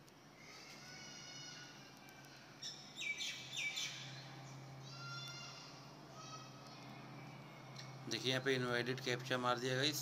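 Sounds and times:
low steady hum: 0.0 - 10.0
birds chirping: 2.6 - 5.8.

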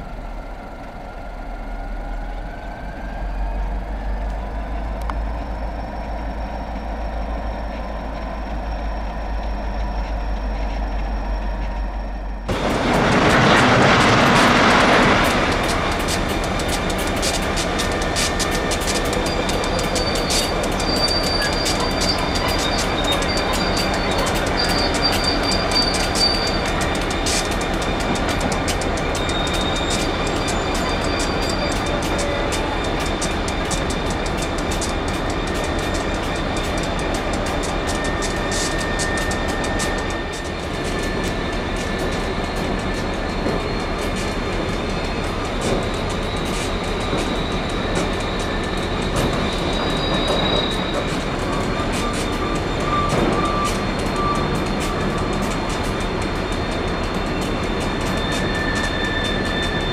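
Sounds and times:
diesel locomotive engine rumble: 0.0 - 59.9
thin high squeal: 13.2 - 59.9.

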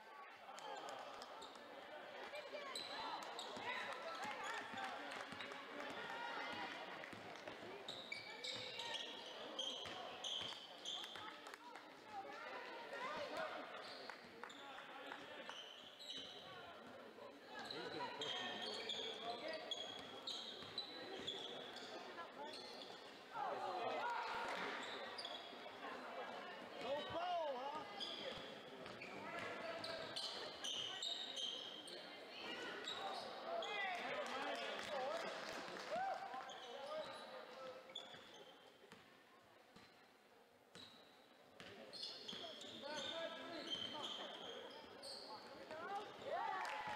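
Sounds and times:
voices echoing in a hall: 0.0 - 46.9
sneakers squeaking: 7.8 - 11.2, 15.5 - 16.8, 17.6 - 23.2, 24.4 - 25.7, 27.8 - 33.9, 36.5 - 37.3, 37.9 - 39.0, 40.7 - 46.2.

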